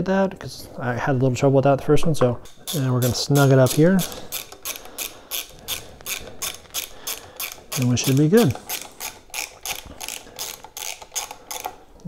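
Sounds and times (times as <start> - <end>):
socket ratchet clicking: 2.5 - 11.8.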